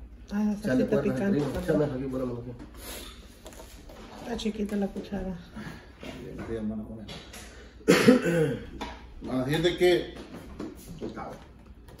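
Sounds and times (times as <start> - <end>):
man coughing loudly: 7.8 - 8.8.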